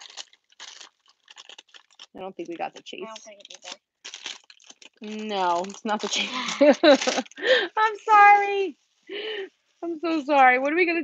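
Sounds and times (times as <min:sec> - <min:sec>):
plastic bag and bubble wrap crinkling: 0:00.0 - 0:11.0.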